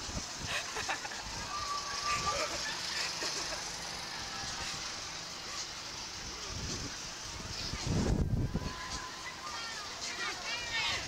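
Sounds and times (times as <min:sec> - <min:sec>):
wind rushing on microphone: 0:00.0 - 0:02.4, 0:06.2 - 0:09.7.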